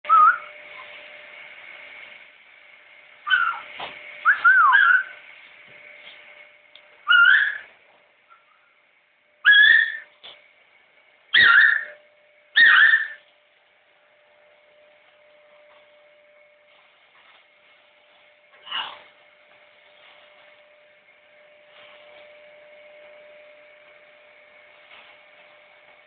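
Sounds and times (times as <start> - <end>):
faint steady hum: 0.0 - 26.0
macaw whistling: 0.1 - 0.5, 3.3 - 3.6, 4.2 - 5.1, 7.1 - 7.7, 9.4 - 10.1, 12.6 - 13.2.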